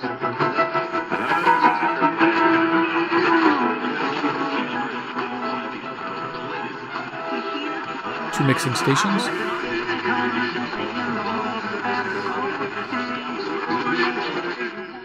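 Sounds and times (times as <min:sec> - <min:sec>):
am radio music: 0:01.0 - 0:02.5, 0:08.3 - 0:13.6.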